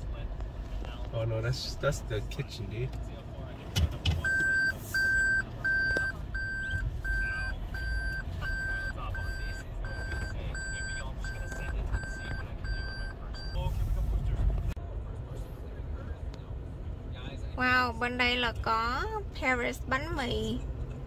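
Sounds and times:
low road and engine rumble: 0:00.0 - 0:21.0
reversing warning beep: 0:04.2 - 0:13.8.

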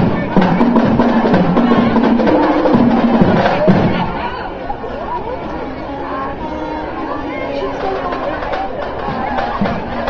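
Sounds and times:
crowd chatter: 0:00.0 - 0:10.0
marching band drums and horns: 0:00.0 - 0:10.0.

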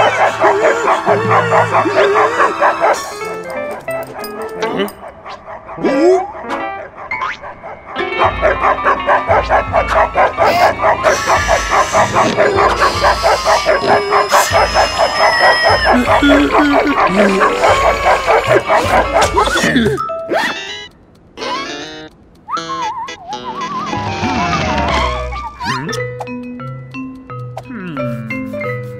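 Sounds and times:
cartoon dog barking and growling: 0:00.0 - 0:03.4, 0:05.7 - 0:06.6, 0:08.1 - 0:26.0
cartoon music: 0:10.4 - 0:28.9.

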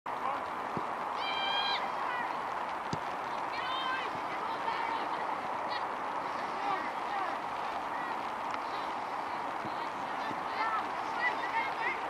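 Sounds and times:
outdoor hiss: 0:00.1 - 0:12.0
people shouting: 0:01.1 - 0:02.6, 0:03.2 - 0:12.0.

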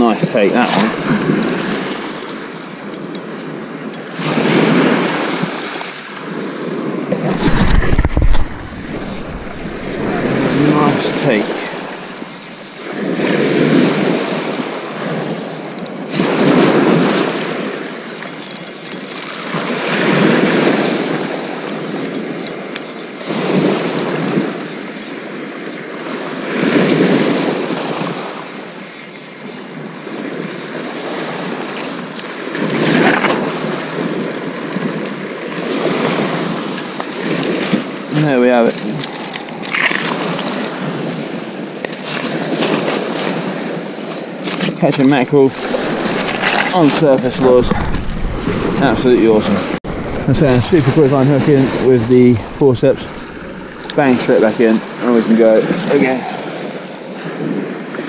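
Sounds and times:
waves breaking on shingle: 0:07.0 - 0:14.5, 0:44.5 - 0:55.3.

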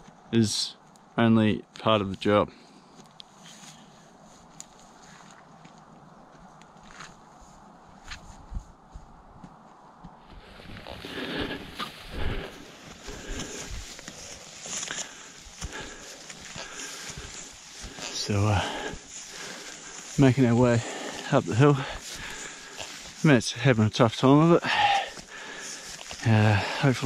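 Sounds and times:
footsteps in dry grass: 0:02.1 - 0:27.0.

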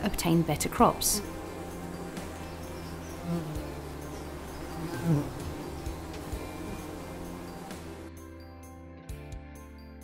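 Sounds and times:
bees buzzing: 0:00.0 - 0:08.1.

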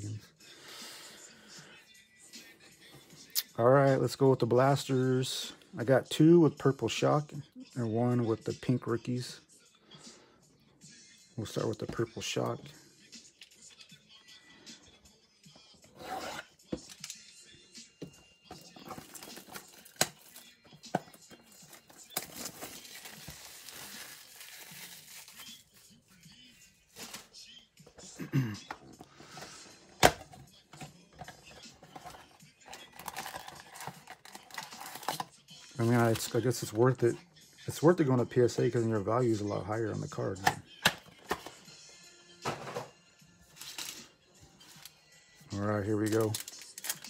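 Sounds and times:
cardboard box and foil packs rustling: 0:18.6 - 0:25.8, 0:31.3 - 0:36.3, 0:45.8 - 0:47.0
plastic wrap crinkling and tearing: 0:21.7 - 0:25.8, 0:32.7 - 0:36.2, 0:45.9 - 0:47.0.

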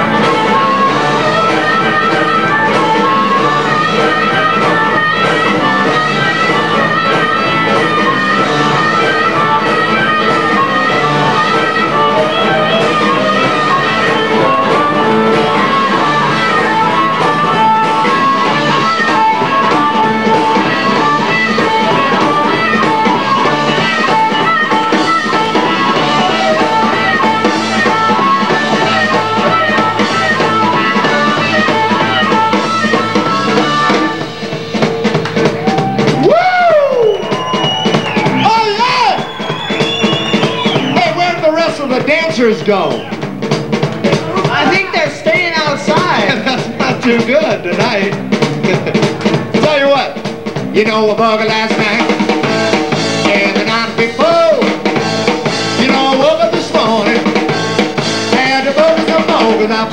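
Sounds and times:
drum kit: 0:00.0 - 0:59.9
electric guitar: 0:00.0 - 0:59.9
live blues band instrumental: 0:00.0 - 0:59.9.

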